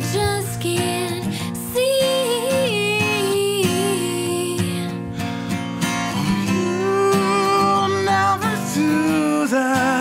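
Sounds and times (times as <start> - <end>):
acoustic guitar strummed: 0.0 - 10.0
person singing long notes: 6.2 - 10.0.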